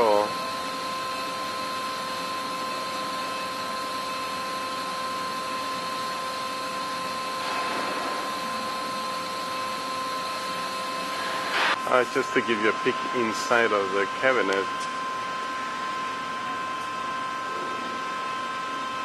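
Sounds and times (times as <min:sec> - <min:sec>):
grinder machine whine: 0:00.0 - 0:19.0.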